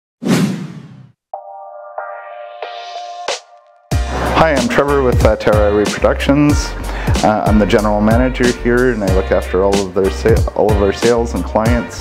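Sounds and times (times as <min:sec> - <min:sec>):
sustained electronic music tone: 0:01.4 - 0:09.6.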